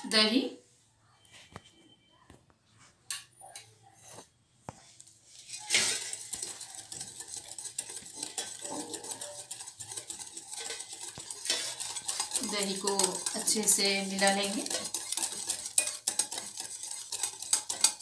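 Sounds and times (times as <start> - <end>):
whisk beating batter in glass bowl: 5.4 - 18.0
spoon clinking against glass bowl: 5.6 - 18.0.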